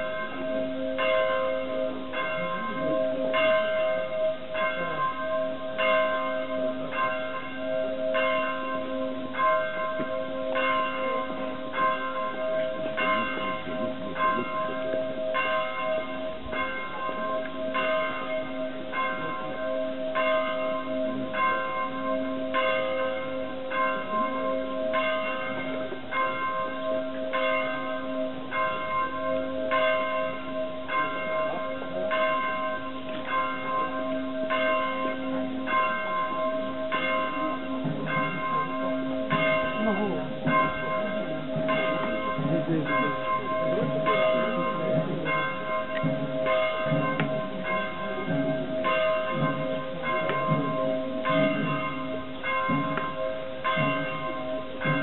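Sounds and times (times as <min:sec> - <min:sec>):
church bell tolling: 0:00.0 - 0:55.0.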